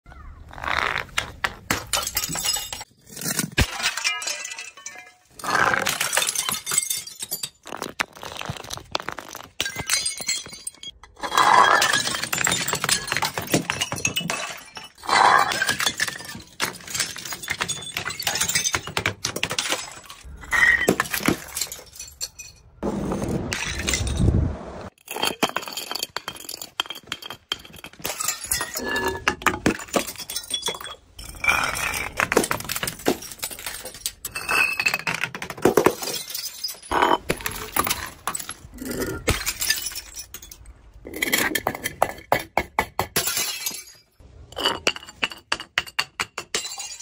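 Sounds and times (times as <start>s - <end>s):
glass bottles shattering on steps: 1.6s - 24.3s, 24.9s - 47.0s
glass shards clinking: 1.9s - 7.6s, 19.5s - 22.8s, 35.8s - 41.6s.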